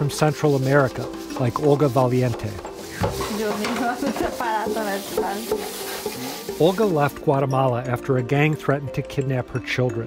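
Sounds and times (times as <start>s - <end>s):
sink water hiss: 0.0s - 7.3s
indistinct voices talking: 1.4s - 5.8s.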